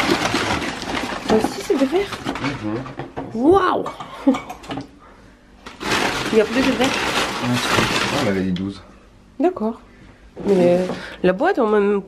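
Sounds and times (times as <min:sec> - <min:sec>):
packing paper rustling: 0:00.0 - 0:02.8, 0:05.6 - 0:08.6.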